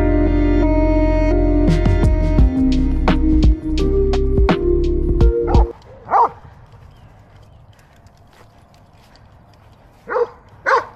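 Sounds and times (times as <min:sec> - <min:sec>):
dog barking: 0:05.5 - 0:06.4, 0:10.0 - 0:10.9
faint outdoor background noise: 0:05.7 - 0:10.9.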